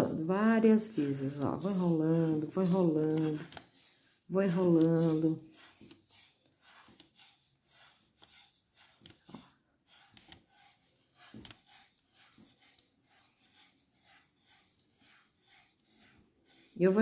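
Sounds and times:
yarn rubbing on plastic case: 0:00.0 - 0:17.0.

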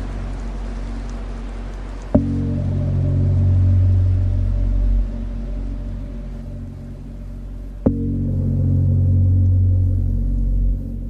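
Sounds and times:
ambient electronic music: 0:00.0 - 0:11.0.

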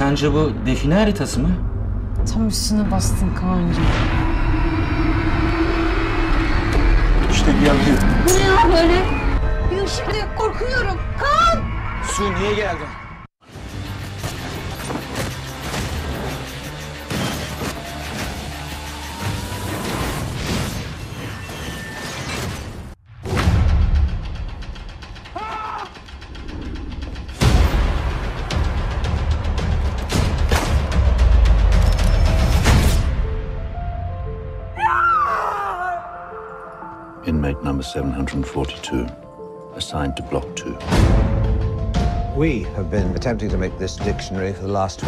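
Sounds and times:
dark held drone tone: 0:01.7 - 0:13.3.

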